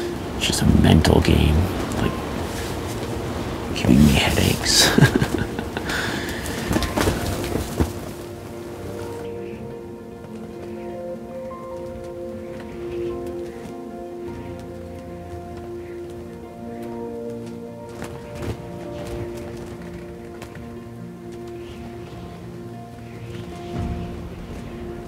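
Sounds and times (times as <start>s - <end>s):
quiet music of long held tones: 0.0s - 25.0s
man laughing: 4.8s - 6.5s.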